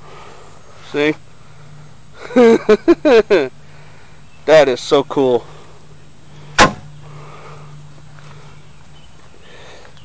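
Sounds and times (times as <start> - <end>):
steady low hum: 0.0 - 10.0
sharp knock: 6.6 - 6.9.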